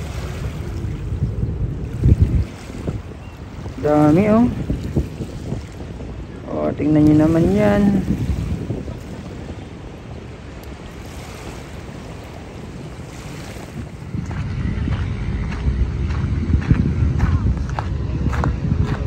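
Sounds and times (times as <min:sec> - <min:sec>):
beach background noise: 0:00.0 - 0:19.0
wind rumbling on microphone: 0:00.0 - 0:19.0.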